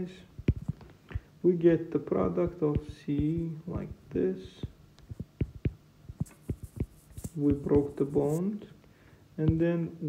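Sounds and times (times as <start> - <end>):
stylus tapping on tablet screen: 0.4 - 1.2, 2.3 - 8.4, 9.4 - 9.6
scratchy stylus strokes: 2.4 - 8.5.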